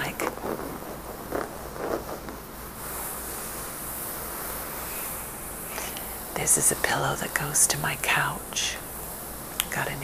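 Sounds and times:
fingernails scratching fabric: 0:00.0 - 0:03.8.

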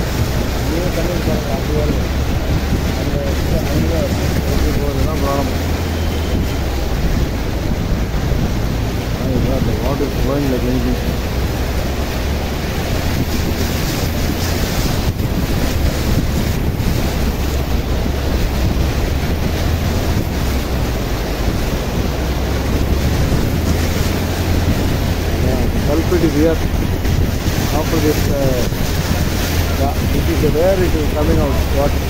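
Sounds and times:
floodwater rushing: 0:00.0 - 0:32.0
wind rumbling on microphone: 0:00.0 - 0:32.0.

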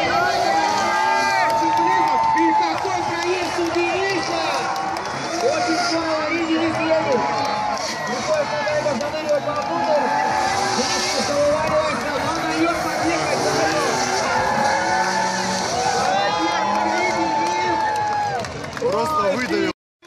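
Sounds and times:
commentator talking: 0:00.0 - 0:17.9, 0:18.8 - 0:19.7
car engines revving hard: 0:00.0 - 0:19.7
crowd noise: 0:00.0 - 0:19.8.

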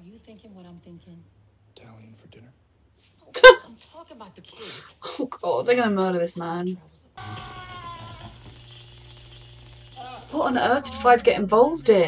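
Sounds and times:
thin high whine: 0:07.2 - 0:11.6.

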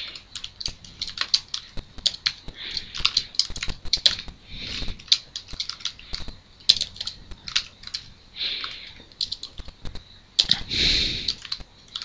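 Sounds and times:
typing on computer keyboard: 0:00.0 - 0:10.6, 0:11.2 - 0:12.0.

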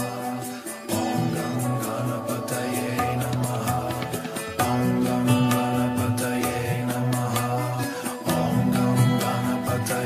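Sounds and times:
mantra chanted in low notes: 0:00.0 - 0:10.0
steady musical accompaniment: 0:00.0 - 0:10.0
light percussive strikes: 0:02.9 - 0:06.6.

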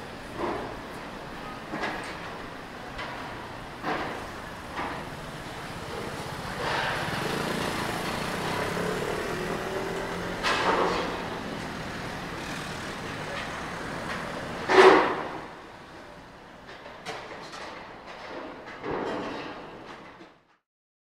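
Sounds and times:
vehicle engine passing: 0:03.8 - 0:15.7.

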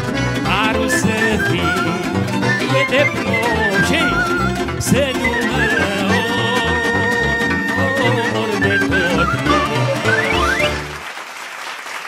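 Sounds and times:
live band playing: 0:00.0 - 0:11.1
applause: 0:09.8 - 0:12.0.

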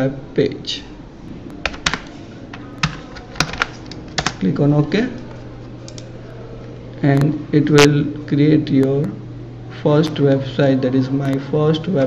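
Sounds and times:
keyboard typing: 0:01.5 - 0:07.3.

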